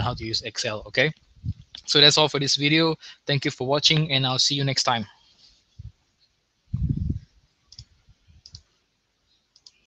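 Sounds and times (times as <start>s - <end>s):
computer mouse clicks: 7.7s - 8.7s, 9.5s - 9.9s.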